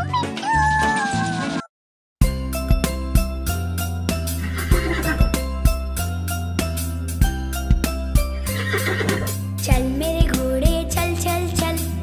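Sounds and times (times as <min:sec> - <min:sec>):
horse whinny: 0:04.4 - 0:05.2, 0:08.5 - 0:09.4
children's song with drum beat: 0:09.2 - 0:12.0.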